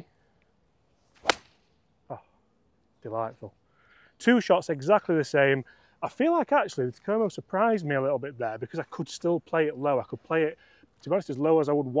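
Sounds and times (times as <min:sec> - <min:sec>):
golf club striking ball: 0:01.2 - 0:01.6.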